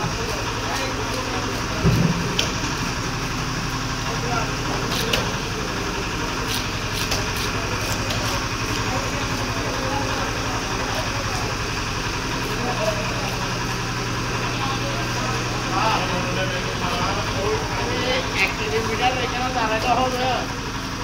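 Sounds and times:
steady mechanical hum: 0.0 - 21.0.

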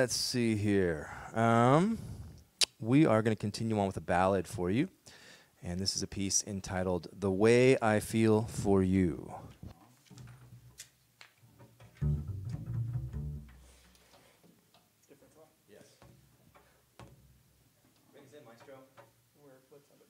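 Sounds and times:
double bass plucked notes: 11.9 - 13.9.

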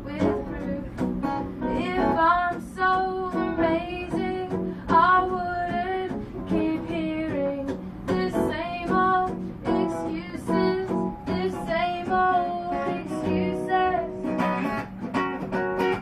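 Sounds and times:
woman singing folk song: 0.0 - 14.8
guitar strumming: 0.0 - 16.0.

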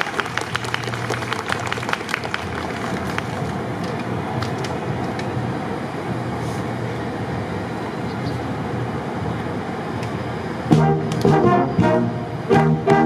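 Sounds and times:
urban traffic hum: 0.0 - 13.0
wind band playing brass: 10.7 - 13.0.

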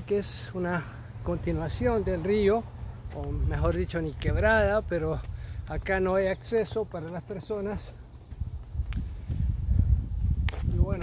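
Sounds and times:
wind rumbling on microphone: 1.3 - 6.3, 7.8 - 11.0.

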